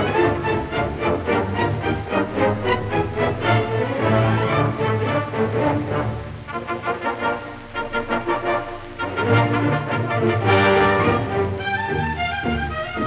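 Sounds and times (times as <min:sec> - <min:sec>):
orchestral music: 0:00.0 - 0:13.0.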